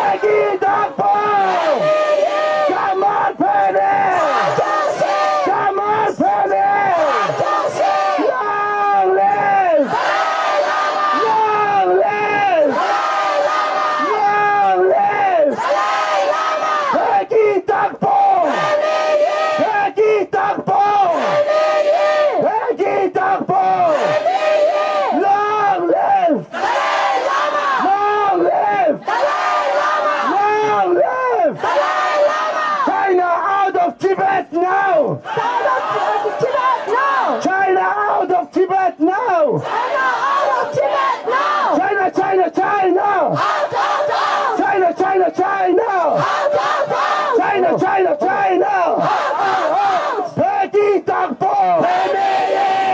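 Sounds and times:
man shouting through loudspeaker: 0.0 - 10.0, 10.6 - 26.5, 27.7 - 41.0, 41.6 - 43.4, 44.4 - 46.3, 47.2 - 52.9
crowd chanting in unison: 0.0 - 52.9.

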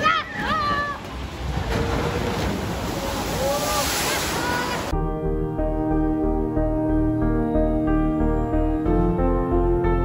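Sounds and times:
boat splashing into water: 0.0 - 5.0
water rushing down a flume: 0.3 - 5.0.

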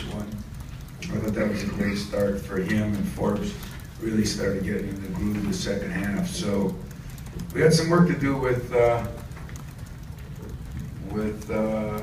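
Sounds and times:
dull room hum: 0.0 - 12.0
faint ticks: 0.0 - 12.0.

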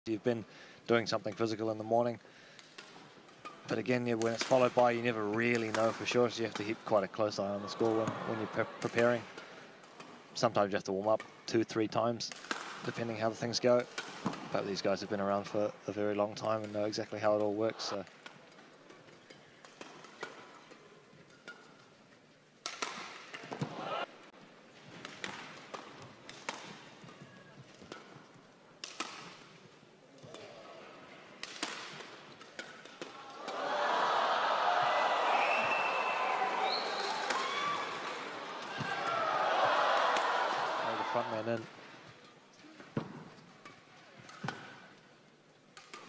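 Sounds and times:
crowd cheering: 7.4 - 9.2, 23.6 - 24.1, 33.2 - 41.6
racket hitting shuttlecock: 12.3 - 12.9, 13.8 - 14.5, 22.6 - 24.0, 24.9 - 28.2, 28.8 - 29.6, 31.4 - 33.7, 45.7 - 46.0.

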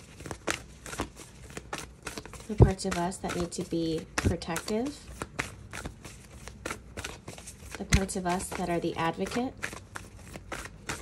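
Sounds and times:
cards being shuffled by hand: 0.0 - 11.0.

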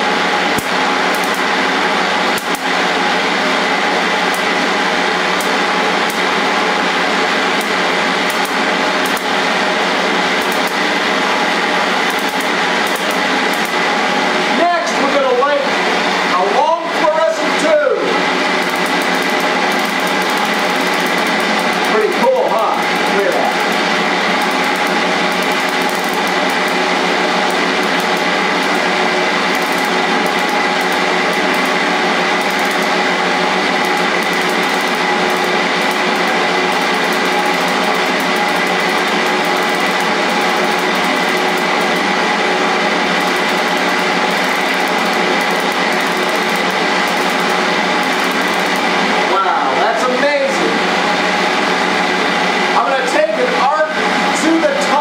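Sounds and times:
motor-driven belt whine: 0.0 - 55.0
high-voltage spark ticks: 0.5 - 1.5, 2.3 - 2.8, 4.2 - 4.6, 5.3 - 6.3, 7.5 - 9.4, 10.4 - 10.9, 12.0 - 13.8, 18.6 - 42.2, 43.1 - 49.0.

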